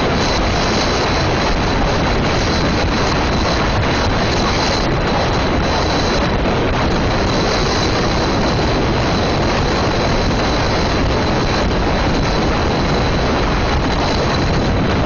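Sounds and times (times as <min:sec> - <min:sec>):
car road noise: 0:00.0 - 0:15.0
wind rushing over microphone: 0:00.0 - 0:15.0.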